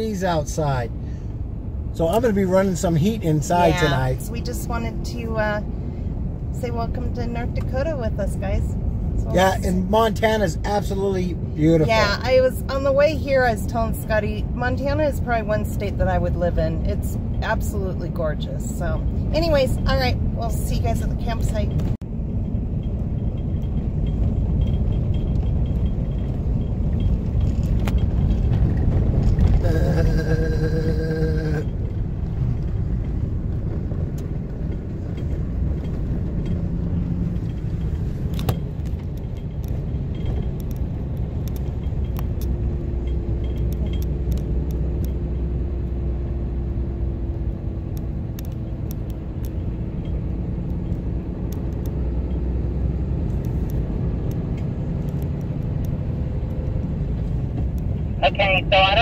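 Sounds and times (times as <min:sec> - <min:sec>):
engine and tyres rumbling: 0:00.0 - 0:59.0
gravel clicking and rattling: 0:21.4 - 0:30.9, 0:31.6 - 0:45.9.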